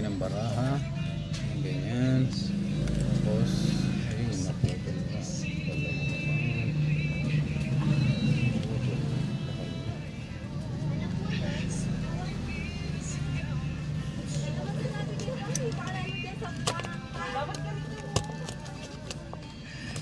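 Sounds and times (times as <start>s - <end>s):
music: 0.0s - 20.0s.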